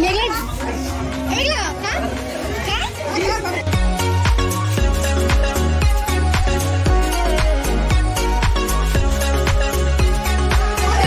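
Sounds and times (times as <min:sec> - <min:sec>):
background music: 0:00.0 - 0:11.0
children calling and chattering: 0:00.0 - 0:11.0.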